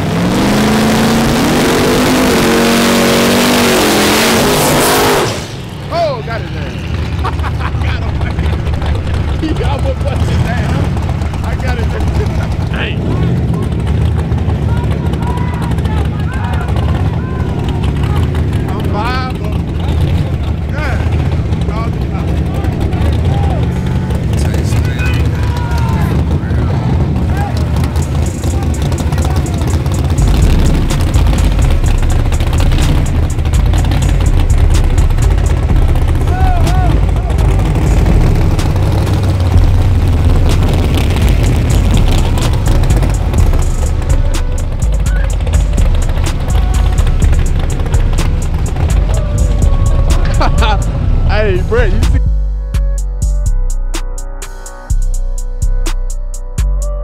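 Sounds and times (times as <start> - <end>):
race car engines rumbling: 0.0 - 56.6
crowd shouting: 14.6 - 18.5, 22.5 - 29.8, 36.2 - 37.5.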